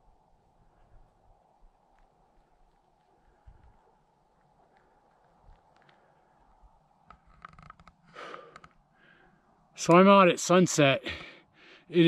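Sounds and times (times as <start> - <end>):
faint rustle: 0.0 - 9.8
faint clicks: 1.8 - 9.2.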